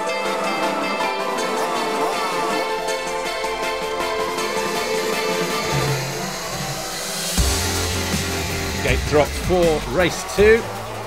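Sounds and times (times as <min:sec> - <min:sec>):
background music: 0:00.0 - 0:11.0
motocross bikes at full throttle: 0:04.2 - 0:11.0.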